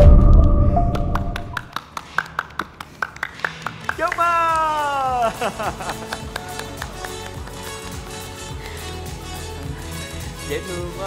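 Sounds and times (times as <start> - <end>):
loud tense music: 0.0 - 1.6.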